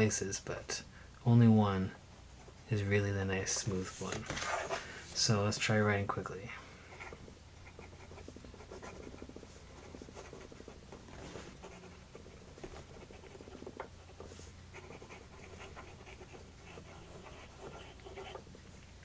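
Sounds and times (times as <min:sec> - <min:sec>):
fountain pen writing on paper: 0:07.0 - 0:10.8, 0:11.6 - 0:18.5.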